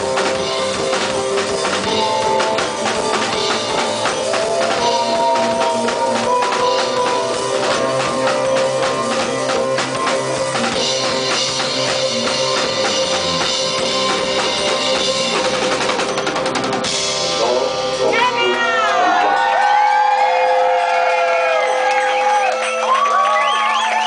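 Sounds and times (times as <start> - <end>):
driving drum-kit beat: 0.0 - 19.5
live band playing: 0.0 - 20.1
wavering gliding melodic line: 0.4 - 16.8.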